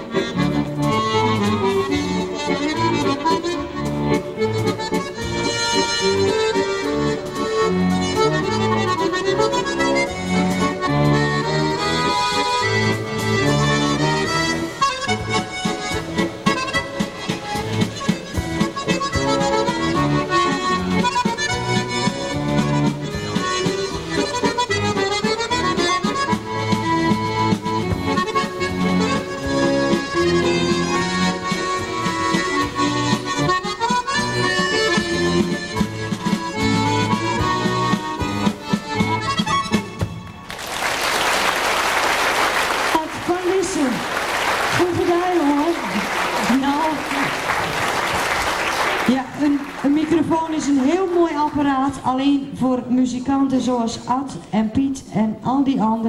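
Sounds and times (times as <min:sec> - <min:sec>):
accordion playing a waltz: 0:00.0 - 0:40.4, 0:42.4 - 0:51.6
applause: 0:40.4 - 0:51.7.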